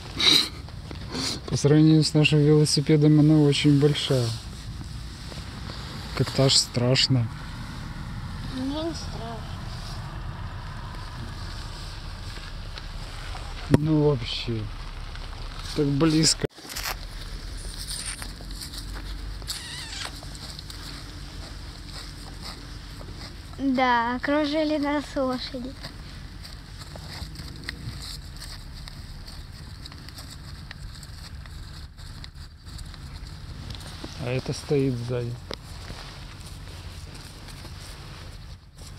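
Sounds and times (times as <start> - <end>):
faint clicks and rustles: 0.0 - 38.9.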